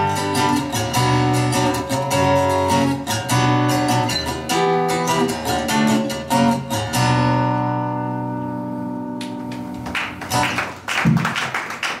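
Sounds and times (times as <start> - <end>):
audience applause: 9.7 - 12.0.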